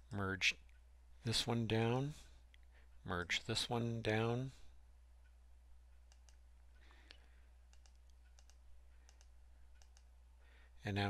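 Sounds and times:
low steady hum: 0:00.0 - 0:11.0
computer mouse clicks: 0:06.0 - 0:06.4, 0:07.0 - 0:10.1.

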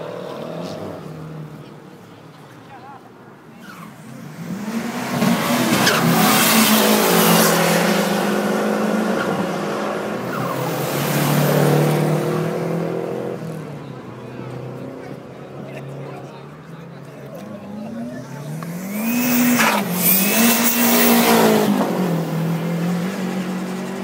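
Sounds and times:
turbocharged cars passing: 0:00.0 - 0:24.0.

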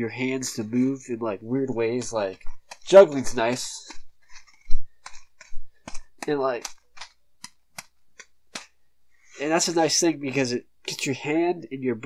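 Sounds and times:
small object clicking: 0:02.0 - 0:08.8.

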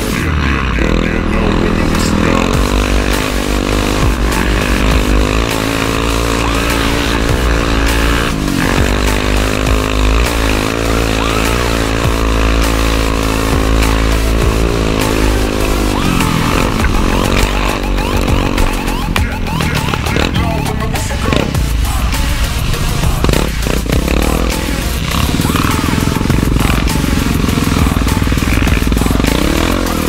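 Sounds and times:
quad engine revving: 0:00.0 - 0:30.0.

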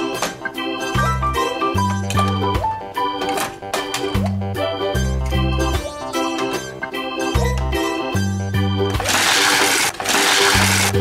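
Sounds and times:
background music: 0:00.0 - 0:11.0
toy cars rattling down plastic track: 0:09.0 - 0:11.0.

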